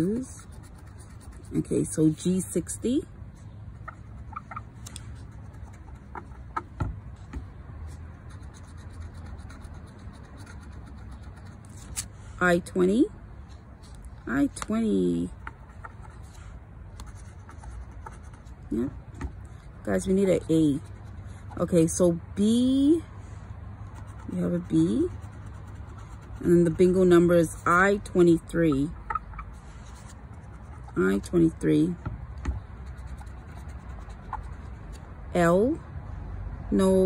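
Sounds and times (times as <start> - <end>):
scratching scratch ticket: 0.0 - 2.8, 3.7 - 6.8, 7.8 - 12.2, 14.6 - 22.9, 23.9 - 32.0, 32.6 - 35.0.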